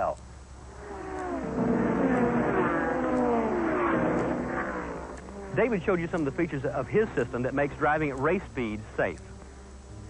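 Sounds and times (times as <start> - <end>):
race car engine: 0.6 - 10.0.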